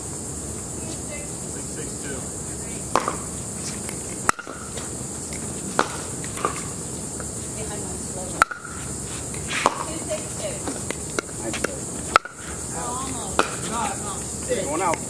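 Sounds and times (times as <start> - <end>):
plastic ball popping off paddles: 2.9 - 3.3, 4.2 - 6.7, 10.8 - 12.6, 13.3 - 13.7.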